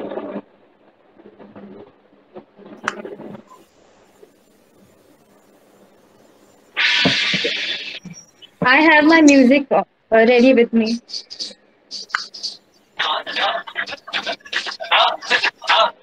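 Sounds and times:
hiss-like rustling noise: 0.0 - 9.6, 10.4 - 15.9.

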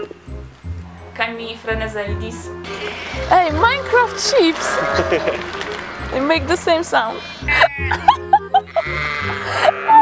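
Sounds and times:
background music with held low notes: 0.0 - 10.0
sheep bleating: 3.6 - 10.0.

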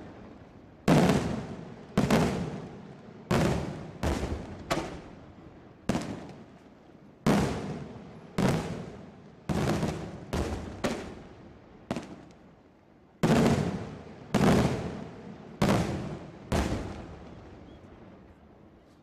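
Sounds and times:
fireworks bangs: 0.0 - 6.6, 7.2 - 12.4, 13.2 - 18.4.

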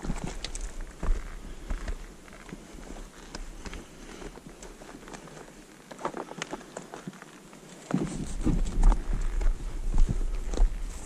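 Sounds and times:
footsteps crunching in snow: 0.0 - 11.0.

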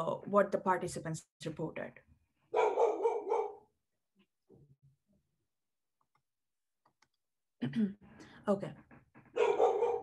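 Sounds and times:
dog barking: 2.5 - 3.7, 9.3 - 10.0.

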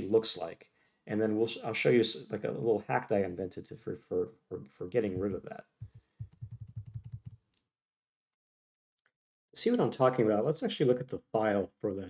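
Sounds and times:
computer keyboard clicks: 5.9 - 7.4.

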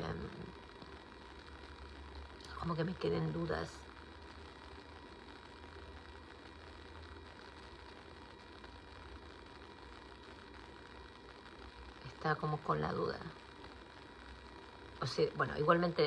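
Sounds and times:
faint hiss: 0.0 - 16.0
steady low hum: 0.0 - 16.0.

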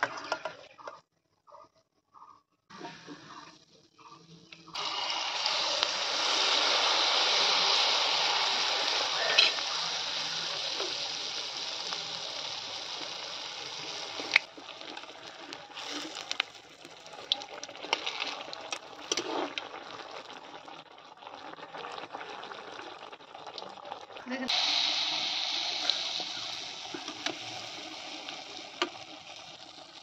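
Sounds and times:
cake sizzling in hot oil: 4.7 - 30.0.

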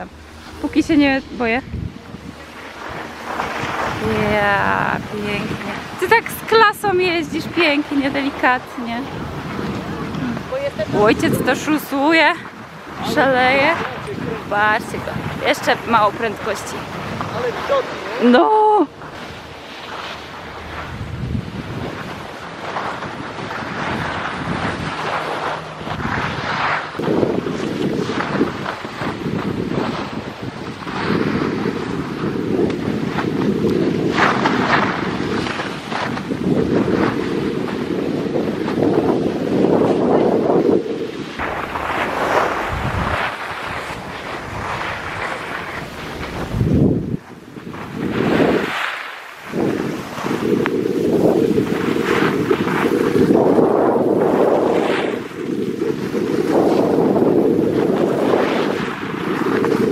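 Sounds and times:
wind rushing over microphone: 0.0 - 59.9
skis scraping on snow: 0.1 - 59.9.

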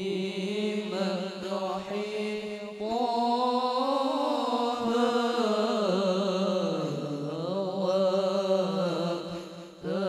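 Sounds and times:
boys chanting devotional song: 0.0 - 10.0.

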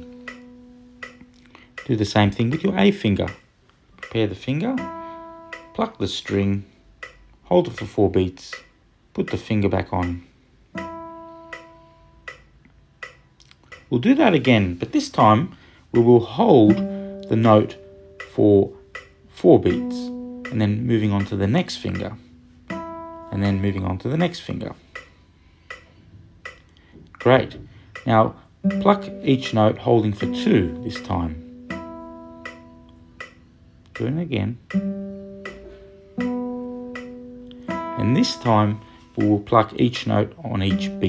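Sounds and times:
classical guitar string ringing: 0.0 - 3.4, 4.0 - 41.0
soft click keeping the beat: 0.0 - 41.0.

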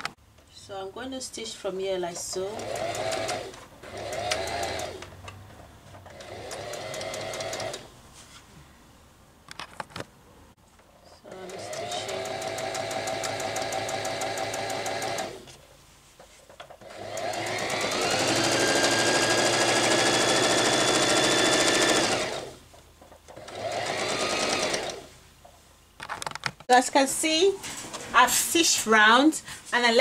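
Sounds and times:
sewing machine stitching: 2.3 - 5.0, 6.0 - 7.9, 11.3 - 15.5, 16.8 - 22.6, 23.4 - 25.1.

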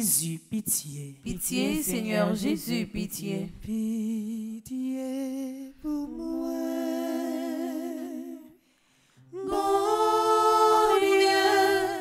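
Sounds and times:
voices singing a slow prayer: 0.0 - 8.6, 9.2 - 12.0.

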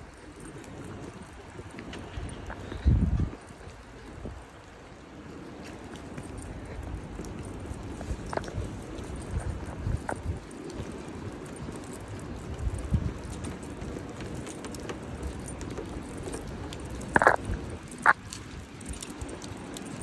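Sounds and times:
footsteps on wet pavement: 0.0 - 20.0
traffic: 0.0 - 20.0.

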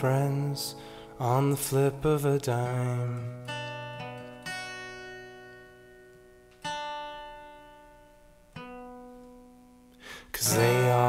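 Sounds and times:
acoustic guitar chords strummed: 0.0 - 11.0.

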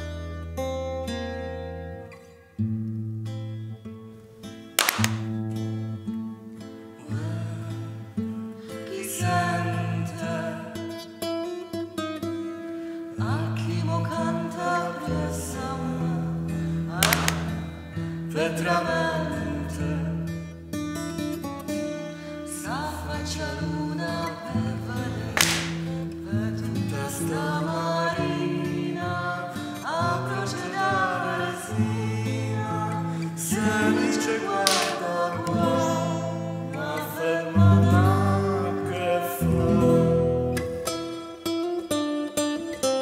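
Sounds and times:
acoustic guitar playing: 0.0 - 43.0
slow song with held notes: 0.0 - 43.0
sharp crack: 4.8 - 5.4, 17.0 - 17.8, 25.4 - 26.0, 34.6 - 35.1
sharp bright guitar strum: 4.8 - 5.6, 17.0 - 18.0, 25.4 - 26.1, 34.6 - 36.3.

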